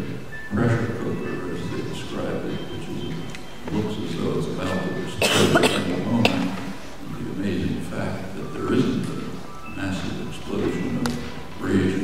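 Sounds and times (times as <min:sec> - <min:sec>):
person coughing: 0:05.2 - 0:06.6.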